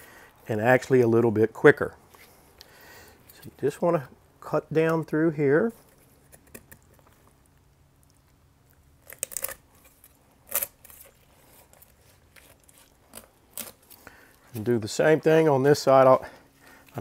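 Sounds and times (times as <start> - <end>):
knife cutting through skin and bone: 9.0 - 14.0.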